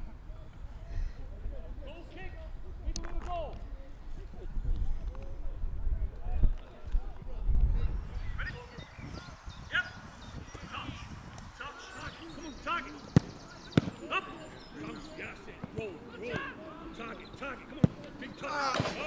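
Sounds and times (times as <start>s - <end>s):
football kick thuds: 13.1s - 14.0s.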